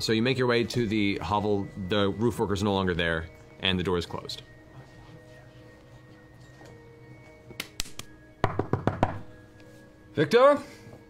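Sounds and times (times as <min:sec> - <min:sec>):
soft background music: 0:00.0 - 0:11.0
knocking on wooden tabletop: 0:08.4 - 0:09.3.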